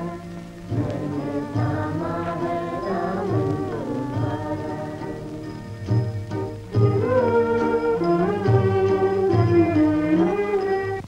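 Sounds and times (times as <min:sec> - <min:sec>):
film music with held notes: 0:00.0 - 0:11.0.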